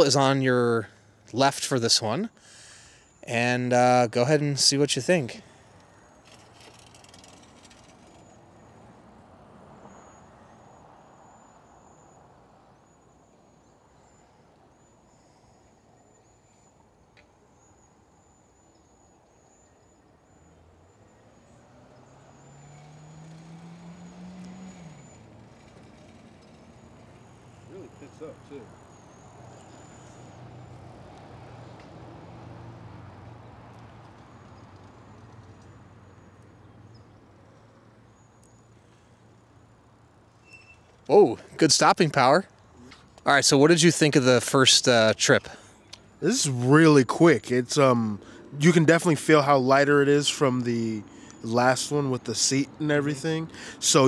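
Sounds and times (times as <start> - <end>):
quiet outdoor ambience: 0.0 - 54.0.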